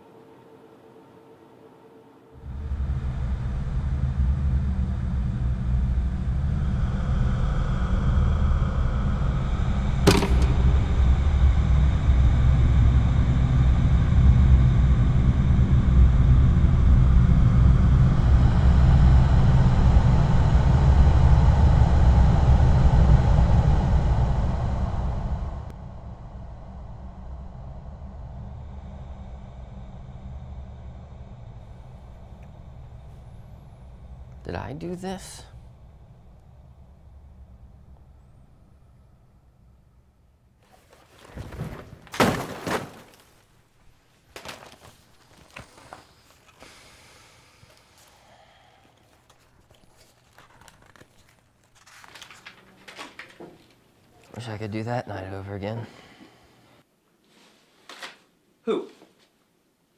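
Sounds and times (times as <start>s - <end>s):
quiet steady hum: 0.0s - 59.9s
loud low rumble: 2.4s - 40.6s.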